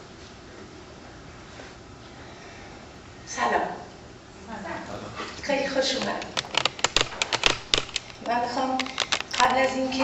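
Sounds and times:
sharp irregular clicks and knocks: 0:05.9 - 0:09.8.

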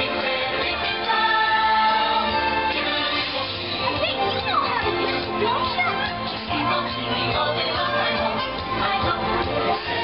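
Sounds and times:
parade music: 0:00.0 - 0:10.0.

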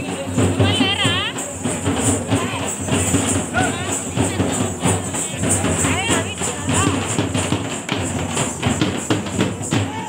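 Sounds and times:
drums beating fast rhythm: 0:00.0 - 0:10.0
jingling hiss: 0:00.0 - 0:10.0.

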